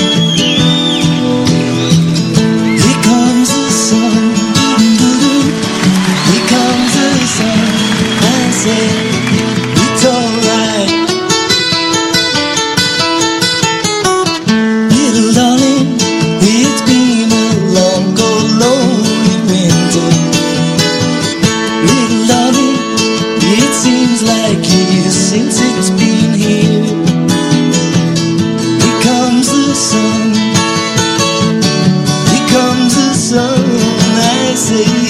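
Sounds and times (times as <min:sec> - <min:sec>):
acoustic guitars playing bluegrass: 0:00.0 - 0:35.0.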